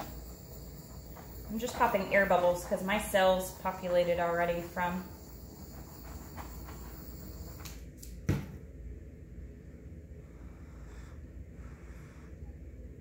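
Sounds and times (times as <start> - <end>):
butane torch hissing: 0.0 - 7.8.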